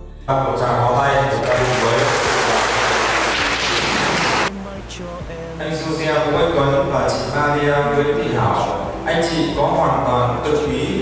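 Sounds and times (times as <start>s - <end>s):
crowd applauding: 1.4s - 4.5s.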